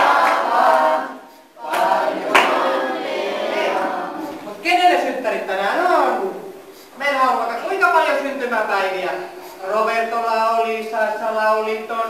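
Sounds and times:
group singing a celebration song: 0.0 - 4.6.

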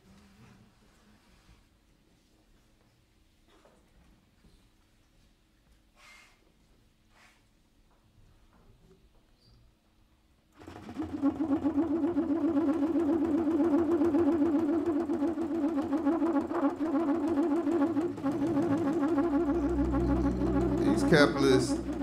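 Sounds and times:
trumpet trilled low note: 11.3 - 22.0
deep bass: 17.8 - 22.0.

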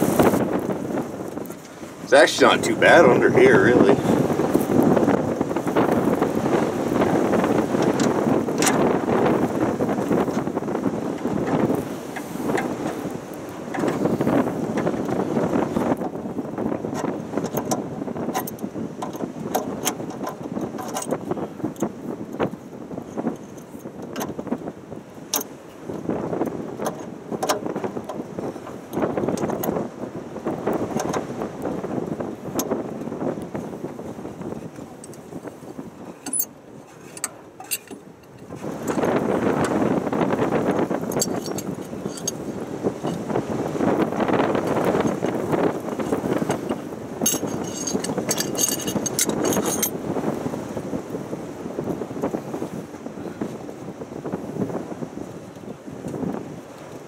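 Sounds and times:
rustling movement on gravel: 0.0 - 8.2.

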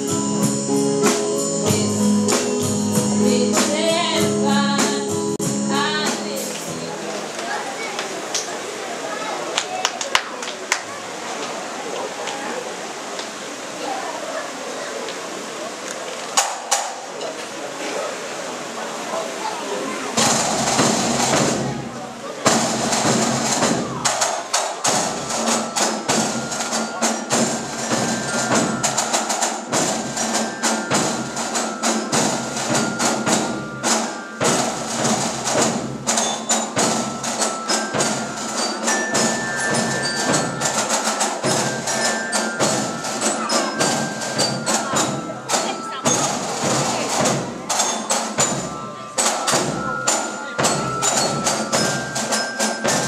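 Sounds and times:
bell tones playing a tune: 0.0 - 6.6, 24.8 - 53.0
snare drum rolls: 20.2 - 53.0.

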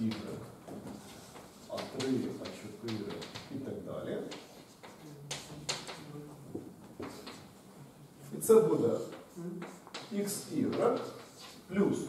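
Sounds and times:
chalk tapping on blackboard: 0.1 - 7.5, 8.8 - 11.7.

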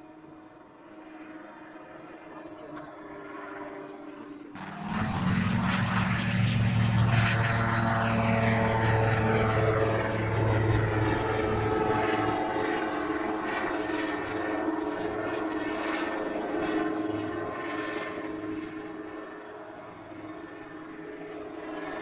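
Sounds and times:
ultralight aircraft engine and propeller: 0.0 - 22.0.

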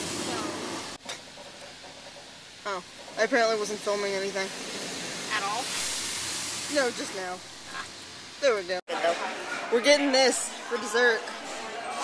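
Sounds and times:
car wash jets hissing: 0.0 - 8.8.

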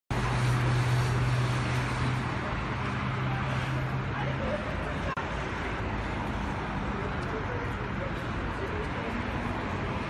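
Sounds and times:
city street traffic: 0.1 - 10.0.

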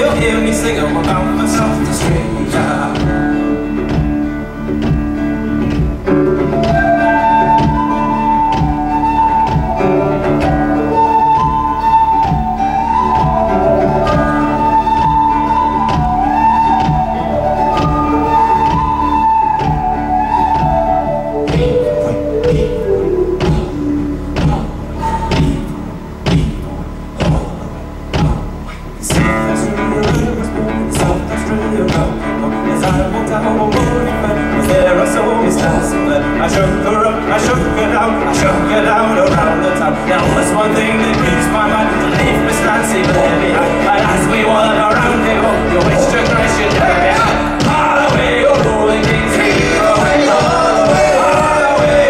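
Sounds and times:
high woodwind melody: 0.0 - 26.0, 28.8 - 52.0
acoustic guitar strumming: 0.0 - 52.0
upright bass: 0.0 - 52.0
whistle playing tune: 6.2 - 24.4, 42.1 - 52.0.

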